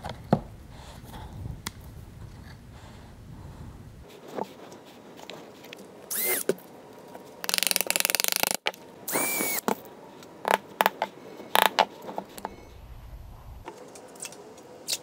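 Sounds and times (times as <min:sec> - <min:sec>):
cordless drill: 0:06.1 - 0:06.5, 0:07.5 - 0:09.6.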